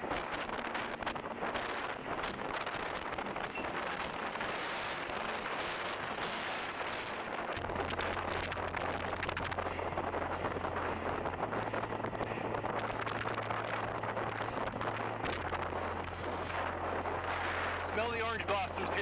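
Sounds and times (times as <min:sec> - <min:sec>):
low hum: 0:00.0 - 0:19.0
wind buffeting microphone: 0:00.0 - 0:19.0.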